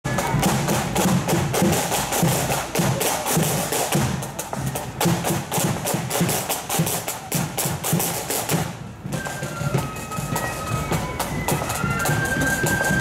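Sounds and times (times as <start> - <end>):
snare drum strikes: 0.1 - 9.0.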